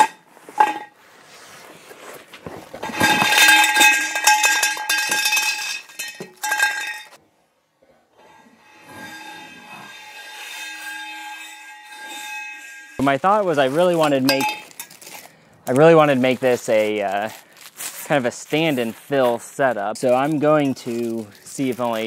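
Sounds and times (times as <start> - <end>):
metal poles clattering on concrete: 0.0 - 1.0, 2.7 - 7.2, 8.2 - 18.1, 20.0 - 22.0.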